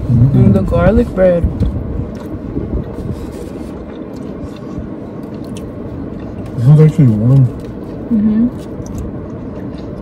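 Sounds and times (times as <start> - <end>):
car engine rumble inside cabin: 0.0 - 10.0
chewing and food handling clicks: 1.6 - 3.0, 3.8 - 10.0.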